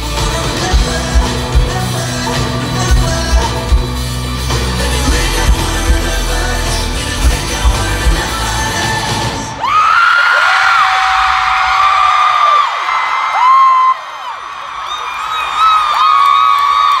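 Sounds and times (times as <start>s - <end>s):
band music: 0.0s - 9.8s
crowd screaming and cheering: 0.0s - 17.0s
long high screams: 9.5s - 17.0s.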